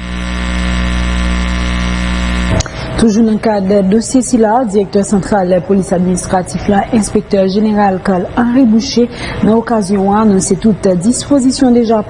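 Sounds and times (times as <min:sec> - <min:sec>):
loud electrical hum: 0:00.0 - 0:12.0.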